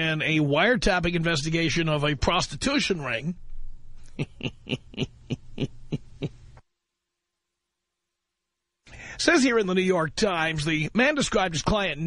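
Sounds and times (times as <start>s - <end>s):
man's breathy laughter: 4.1s - 6.5s.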